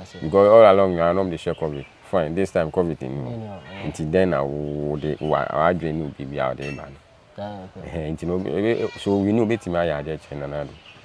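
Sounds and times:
man speaking: 0:00.0 - 0:10.8.

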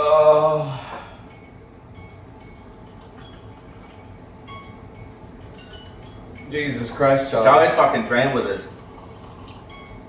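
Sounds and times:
low steady hum: 0:00.0 - 0:10.0
chime-like tinkling: 0:01.2 - 0:10.0.

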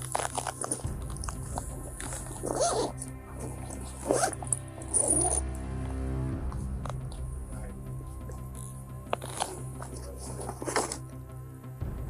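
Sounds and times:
rustle of things handled: 0:00.0 - 0:06.0, 0:08.1 - 0:11.2
background music: 0:00.0 - 0:12.0.

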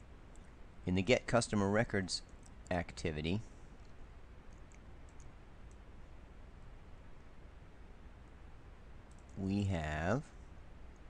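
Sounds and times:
low background hum: 0:00.0 - 0:11.0
computer mouse clicks: 0:03.8 - 0:05.8, 0:09.1 - 0:09.4.

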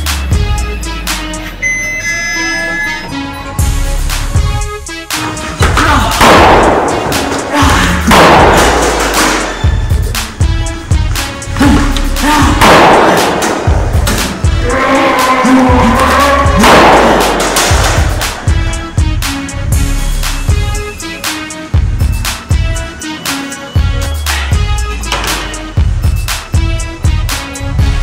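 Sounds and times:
music with steady bass beat: 0:00.0 - 0:28.0
loud blast sound effects: 0:06.2 - 0:07.3, 0:08.1 - 0:08.9, 0:12.6 - 0:13.9, 0:16.6 - 0:18.0.

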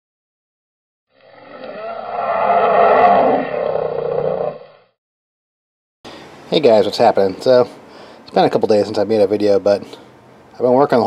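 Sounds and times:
roaring sound effect: 0:01.1 - 0:04.9.

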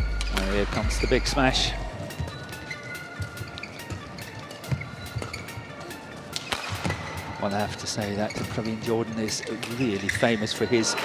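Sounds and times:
rackets hitting shuttlecock: 0:06.3 - 0:07.2.

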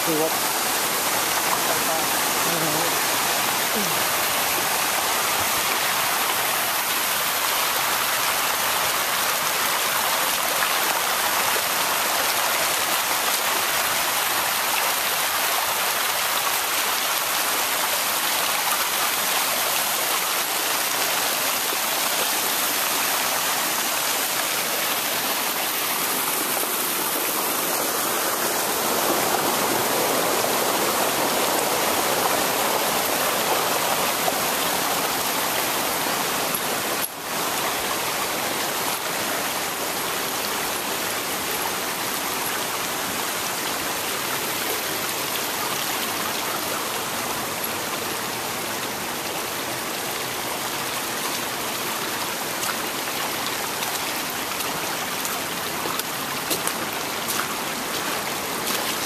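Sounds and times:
floodwater rushing: 0:00.0 - 0:59.0.

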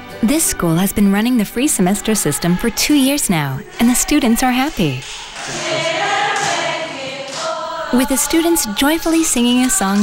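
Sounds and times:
girls singing in unison: 0:01.6 - 0:10.0.

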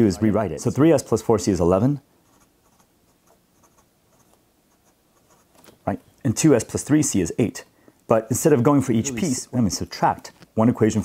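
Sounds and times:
pen scratching on paper: 0:02.2 - 0:05.6.

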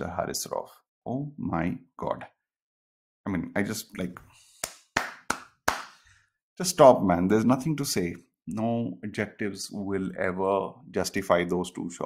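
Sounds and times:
man clapping hands: 0:04.6 - 0:06.0.

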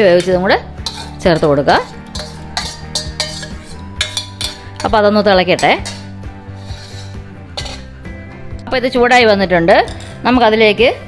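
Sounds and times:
ladle scraping steel pot: 0:00.1 - 0:08.1, 0:09.8 - 0:10.3.

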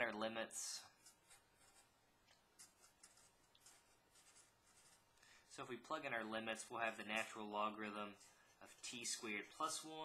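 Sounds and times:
marker scratching on paper: 0:00.9 - 0:02.0, 0:02.6 - 0:05.1.

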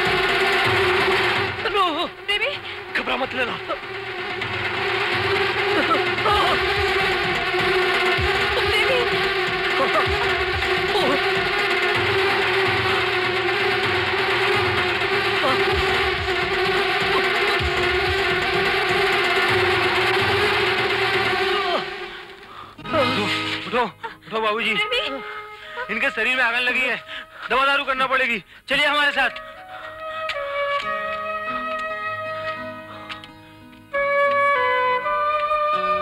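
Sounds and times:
bees buzzing: 0:00.0 - 0:23.6.

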